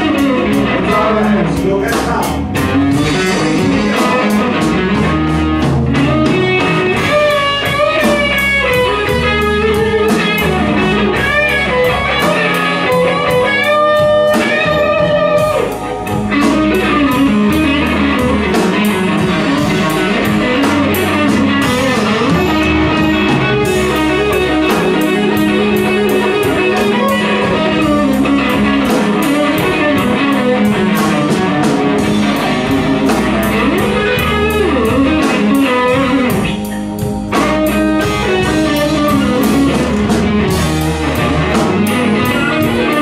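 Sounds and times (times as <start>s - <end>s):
blues band playing: 0.0s - 43.0s
electric guitar bent notes: 0.0s - 43.0s.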